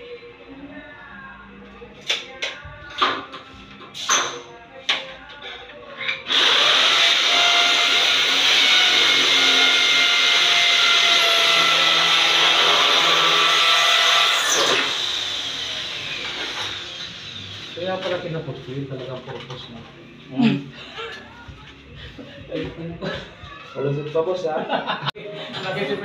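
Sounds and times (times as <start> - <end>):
electric drill motor running: 6.2 - 17.8.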